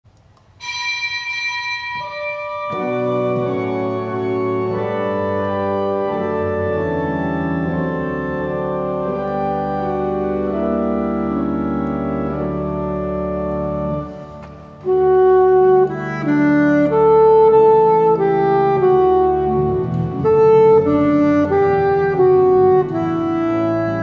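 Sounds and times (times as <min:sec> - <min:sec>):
church organ chords: 0:00.6 - 0:24.0.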